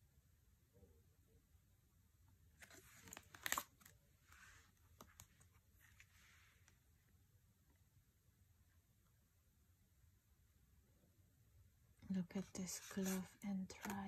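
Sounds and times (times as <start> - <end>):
cards tapping and sliding: 2.6 - 5.5, 12.7 - 14.0
cards rustling: 2.6 - 6.7, 12.6 - 14.0.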